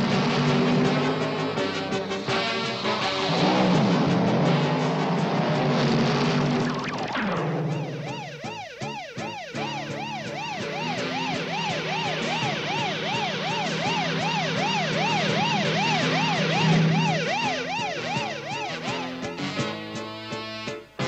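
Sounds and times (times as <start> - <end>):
cartoon siren wail: 2.3 - 19.6.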